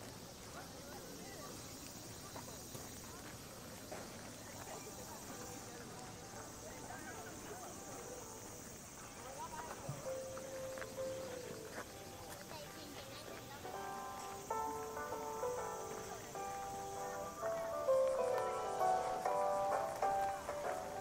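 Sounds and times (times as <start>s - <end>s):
faint voices: 0.0s - 21.0s
footsteps on gravel: 0.0s - 21.0s.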